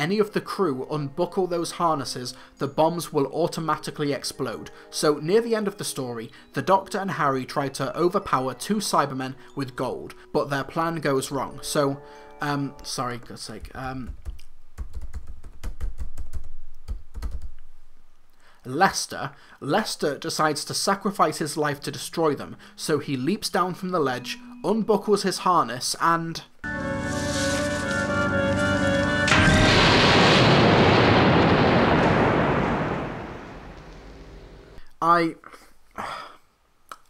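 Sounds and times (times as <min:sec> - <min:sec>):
held music chord: 0:26.6 - 0:30.3
explosion rumble: 0:27.0 - 0:34.8.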